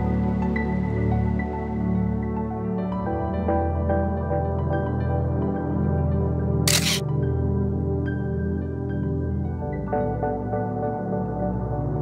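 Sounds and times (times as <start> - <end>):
soft ambient music: 0.0 - 12.0
camera shutter click: 6.7 - 7.0.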